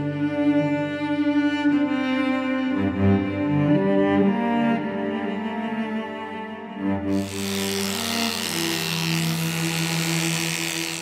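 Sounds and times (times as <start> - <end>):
cello music: 0.0 - 11.0
electric clippers buzzing: 7.1 - 11.0.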